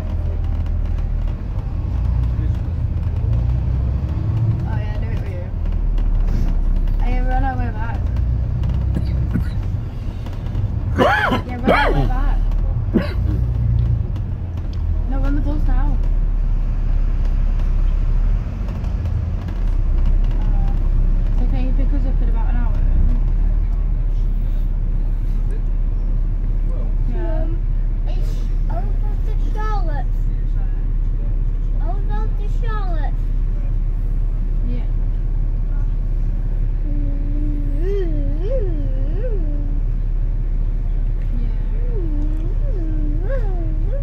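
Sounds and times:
bus rumble: 0.0s - 44.0s
indistinct voices: 10.8s - 13.2s.

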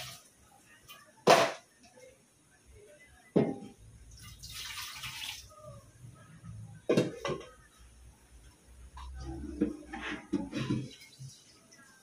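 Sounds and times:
water pouring or splashing: 0.0s - 0.3s, 4.1s - 5.5s.

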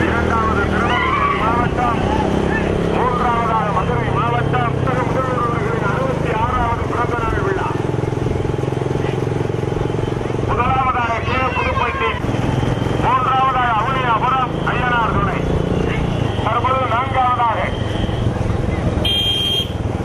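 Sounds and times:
motorcycle engine at speed: 0.0s - 20.0s
man shouting: 0.6s - 2.0s, 10.9s - 12.2s.

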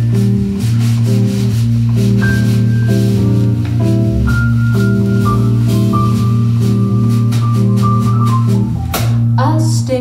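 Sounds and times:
electric guitar chords: 0.0s - 10.0s
light percussion rhythm: 0.0s - 10.0s
piano: 0.0s - 10.0s
steady bass: 0.0s - 10.0s.

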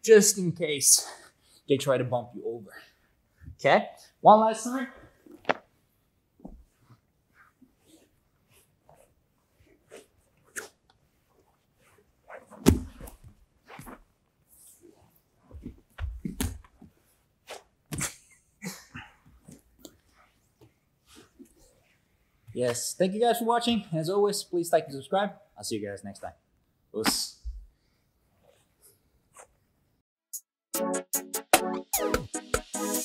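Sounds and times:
fabric rustling and scuffing: 5.1s - 18.0s
bodies thudding on mat: 12.5s - 14.0s, 15.5s - 17.0s.

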